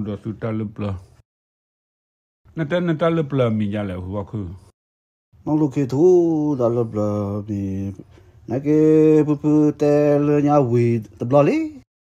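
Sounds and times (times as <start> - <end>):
man chanting: 5.4 - 11.9.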